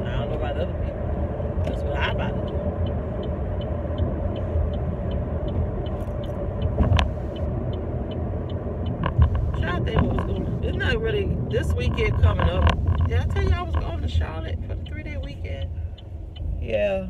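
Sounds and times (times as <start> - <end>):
car engine and road rumble: 0.0 - 17.0
turn signal ticking: 0.0 - 17.0.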